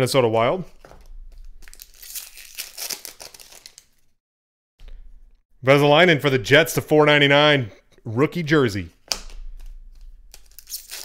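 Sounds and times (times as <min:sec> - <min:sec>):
card wrappers crinkling and tearing: 0:01.0 - 0:04.1, 0:09.5 - 0:11.0.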